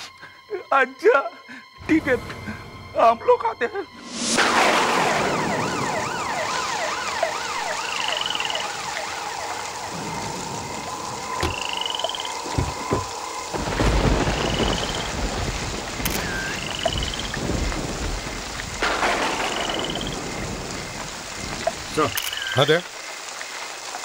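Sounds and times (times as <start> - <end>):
siren warbling: 3.7 - 13.0
heavy rain falling: 4.0 - 24.0
deep thunder rumble: 4.3 - 22.1.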